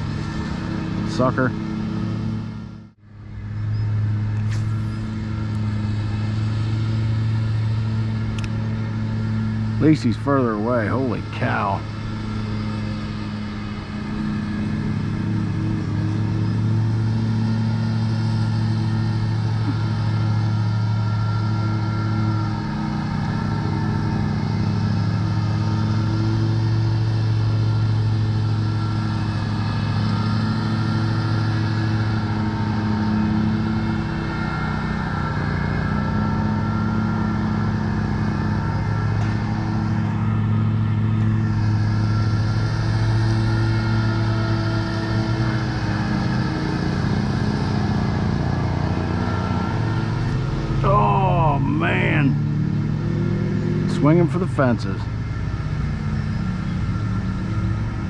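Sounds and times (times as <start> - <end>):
lawn mower engine running: 0.0 - 58.0.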